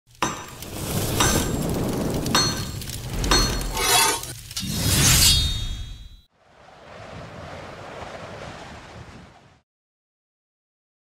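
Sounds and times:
sharp hits with ringing tail: 0.2s - 3.8s
low rumble: 0.5s - 4.4s
whooshing rush: 6.4s - 9.4s.

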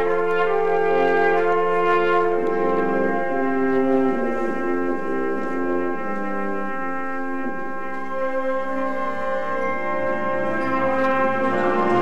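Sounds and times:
wind band playing: 0.0s - 12.0s.

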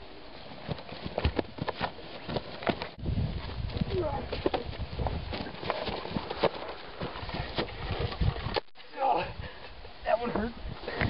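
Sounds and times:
feet thumping and scuffling on grass: 0.3s - 8.5s.

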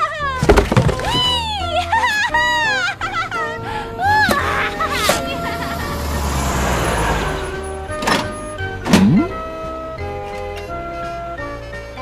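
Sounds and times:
background music: 0.0s - 12.0s
cartoon van engine rumbling: 0.0s - 12.0s.

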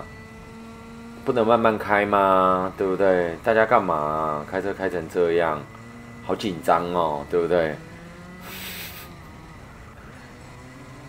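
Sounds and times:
two-stroke kart engine racing: 0.0s - 11.0s.

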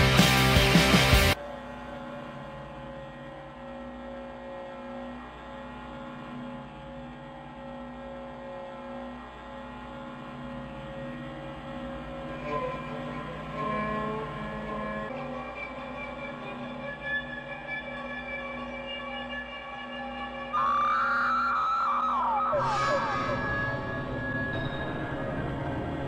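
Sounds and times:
steady low hum: 1.3s - 26.0s
faint higher sounds: 18.1s - 26.0s.

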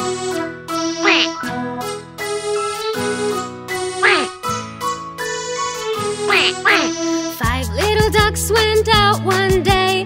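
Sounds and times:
children's song backing music: 0.0s - 10.0s
cartoon duck quacks: 1.0s - 1.4s, 4.0s - 4.4s, 6.3s - 7.0s.

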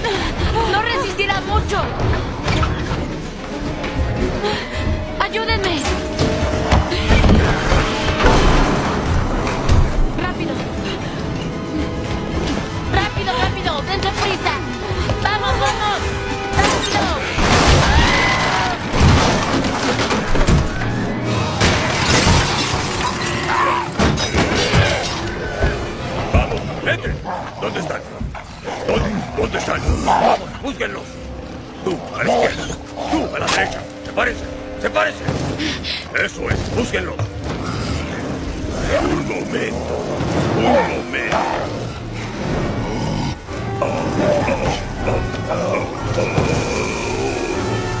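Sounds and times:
loud dramatic music: 0.0s - 48.0s
monster's low growl: 37.5s - 48.0s.

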